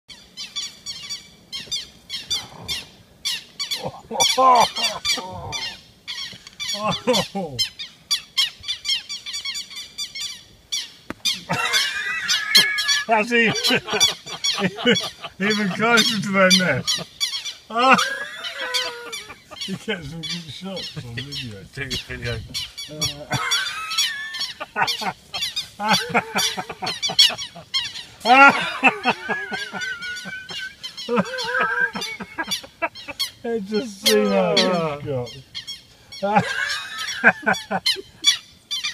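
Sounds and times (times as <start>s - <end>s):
lapwing alarm calls: 0.1s - 38.9s.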